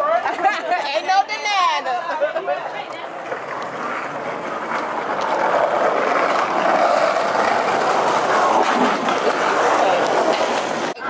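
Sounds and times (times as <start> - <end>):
vehicle passing on city street: 2.4 - 11.0.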